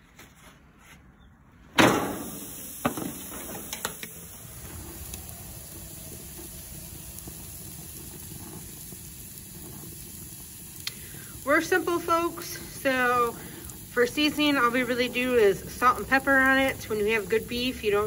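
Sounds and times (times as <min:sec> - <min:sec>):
steak sizzling on a grill: 0:01.9 - 0:18.0.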